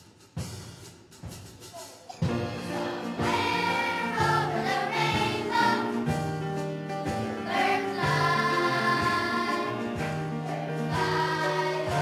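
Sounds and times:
choir singing held chords: 2.2s - 6.4s, 7.1s - 12.0s.

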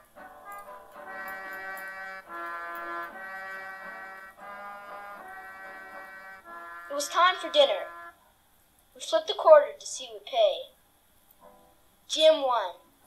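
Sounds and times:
sustained music chords: 0.0s - 8.2s.

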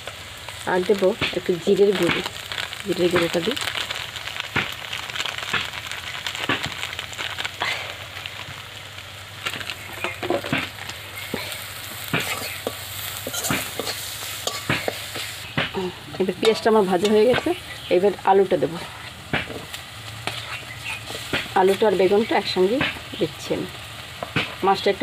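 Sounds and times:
onions sizzling in oil: 0.0s - 25.0s
metal spatula scraping a pan: 10.0s - 15.4s, 16.1s - 17.8s, 18.8s - 21.9s.

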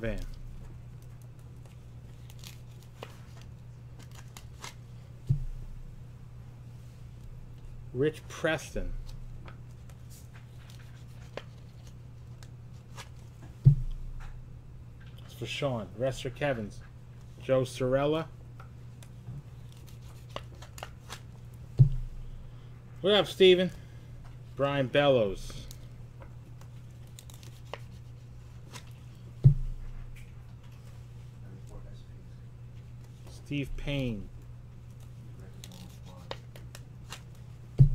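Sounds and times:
trading cards being handled: 0.0s - 5.8s, 8.9s - 14.4s, 18.6s - 22.4s, 25.4s - 31.1s, 34.8s - 37.9s
steady low hum: 0.0s - 37.9s
loud low thump: 13.6s - 14.0s, 21.8s - 22.2s, 29.4s - 29.8s.

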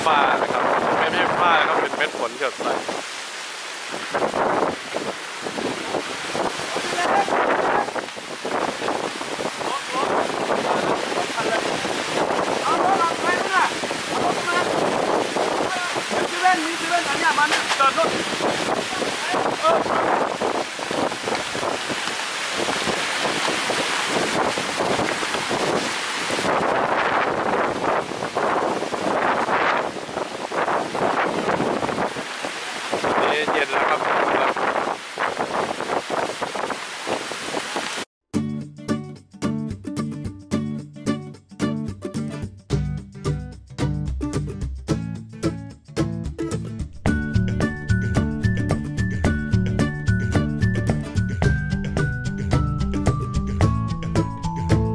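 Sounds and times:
storm wind gusting: 0.0s - 3.2s, 3.8s - 38.1s
heavy rain: 0.0s - 38.1s
wind buffeting microphone: 0.0s - 38.1s.

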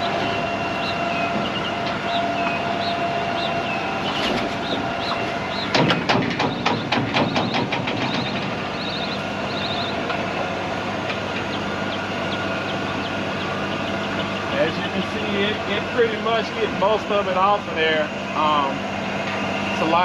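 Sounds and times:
bird chirps: 0.0s - 10.1s, 11.2s - 16.6s
steady machine hum: 0.0s - 20.0s
rake drive clattering knocks: 4.2s - 11.6s.

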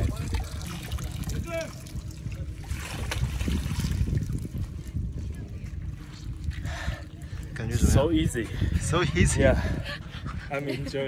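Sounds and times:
water splashing and dripping: 0.0s - 7.6s
wind rumbling on microphone: 0.0s - 11.0s.

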